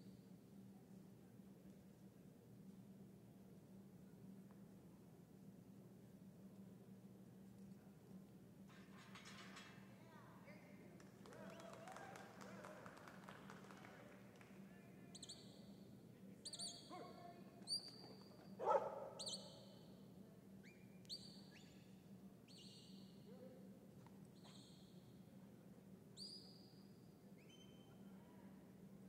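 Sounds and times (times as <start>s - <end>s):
dog barking: 18.6s - 19.4s
short high whistles: 24.4s - 25.0s.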